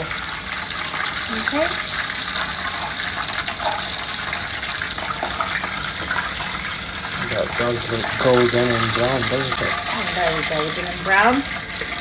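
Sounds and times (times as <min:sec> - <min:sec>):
chicken deep-frying in oil: 0:00.0 - 0:12.0.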